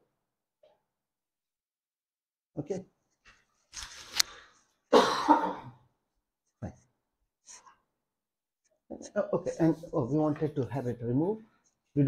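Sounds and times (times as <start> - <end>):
man coughing: 4.9 - 5.8.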